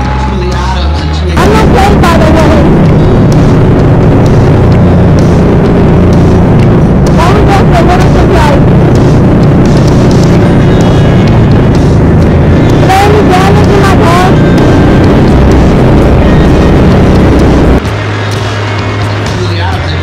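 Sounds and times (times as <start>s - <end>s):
kart engine running hard: 1.4s - 19.6s.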